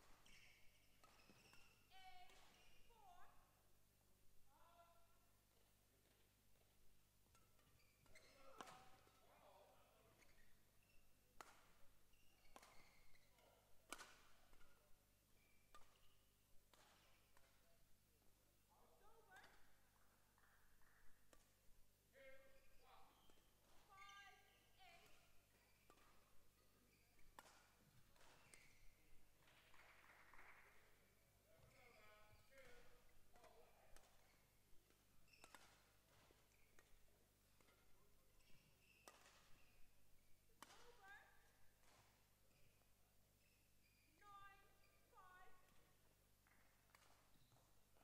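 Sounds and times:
badminton racket hitting shuttlecock: 39.0 - 39.5.

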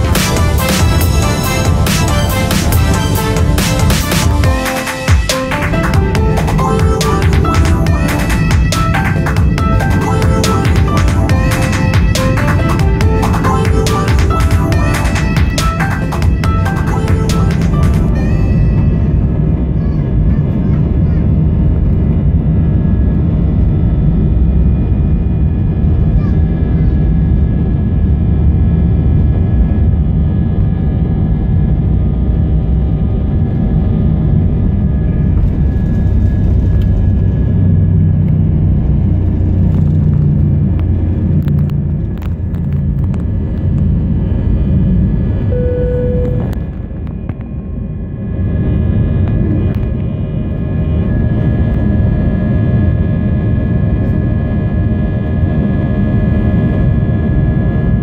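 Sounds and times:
jet engines at takeoff thrust: 0.0 - 58.0
wheels rumbling on runway: 5.5 - 58.0.

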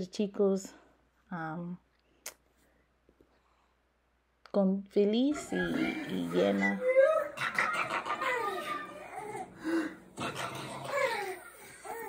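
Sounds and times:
baby cooing and babbling: 6.2 - 7.5, 8.1 - 12.0.

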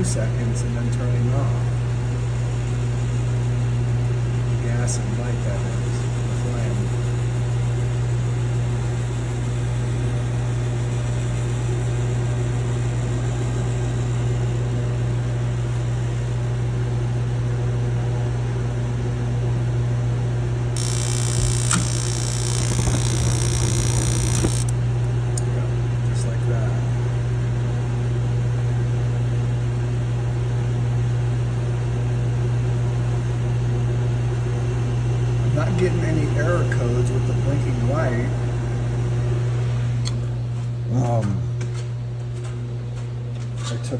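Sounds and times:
heater blower humming: 20.8 - 25.1.

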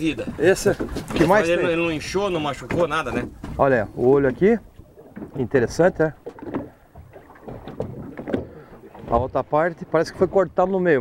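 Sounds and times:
water noise: 0.0 - 11.0
wind: 0.0 - 11.0.

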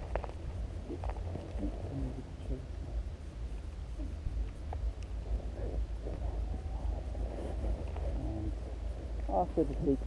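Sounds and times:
faint indistinct sounds: 0.0 - 10.0
wind buffeting microphone: 0.0 - 10.0.

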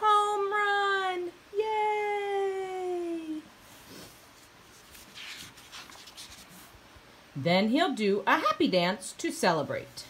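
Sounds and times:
paper page turning: 4.6 - 6.7.

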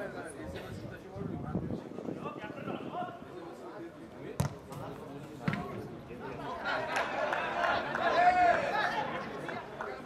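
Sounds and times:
football being kicked: 4.4 - 5.7.

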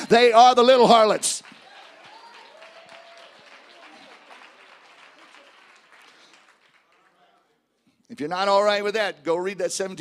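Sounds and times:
faint applause: 1.2 - 7.5.

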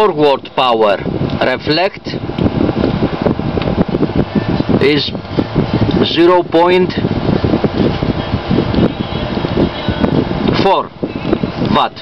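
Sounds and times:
cooling fan rushing air: 0.0 - 12.0.

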